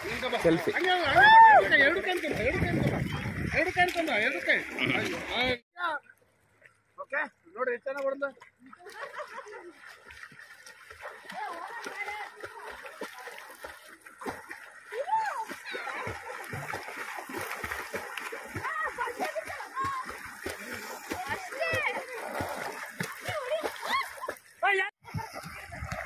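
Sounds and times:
swimmers splashing in water: 0.0s - 5.6s, 8.4s - 26.0s
children shouting: 23.3s - 24.3s.

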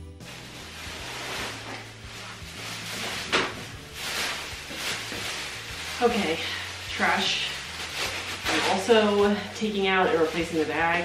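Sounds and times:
plastic bag rustling and crinkling: 0.0s - 11.0s.

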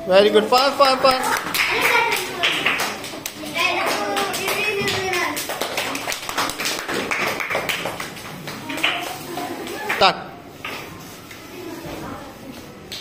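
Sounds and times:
children talking: 0.0s - 13.0s
sharp claps and taps: 1.3s - 10.1s.

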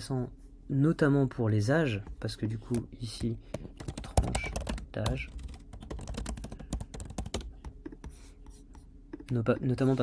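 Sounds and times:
typing on computer keyboard: 3.8s - 8.0s.

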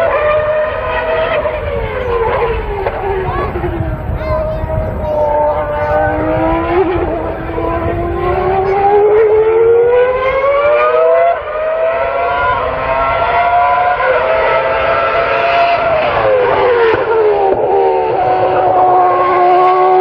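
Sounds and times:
racing car engine accelerating: 0.0s - 20.0s.

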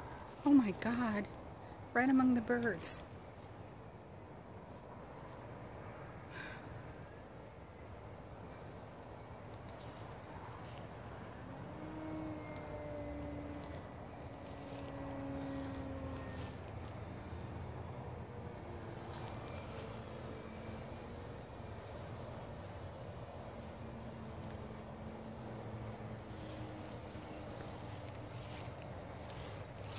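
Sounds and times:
model airplane motor droning: 9.5s - 29.9s.

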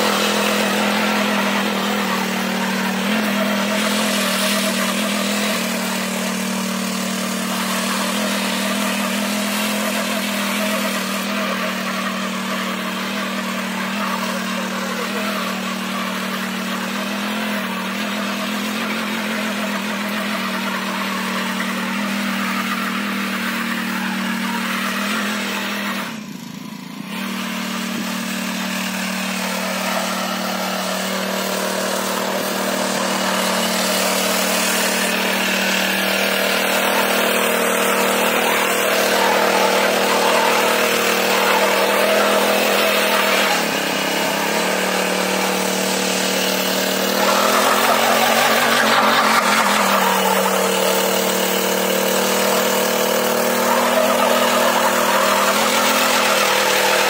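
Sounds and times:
power weeder engine running: 0.0s - 57.0s.

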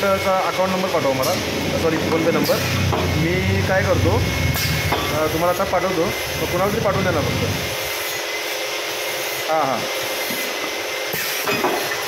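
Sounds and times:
faint machine hum: 0.0s - 10.1s
filling machine hiss: 0.0s - 12.0s.

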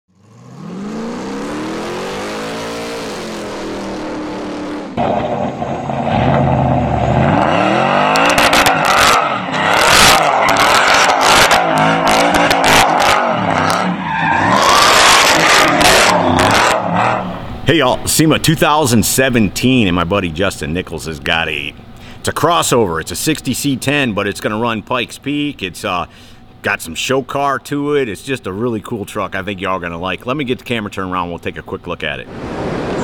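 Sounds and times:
pickup truck engine revving: 0.2s - 18.0s, 32.3s - 33.0s
rising and falling tone: 0.4s - 13.3s, 32.3s - 33.0s
loud bursts of noise: 32.3s - 33.0s.

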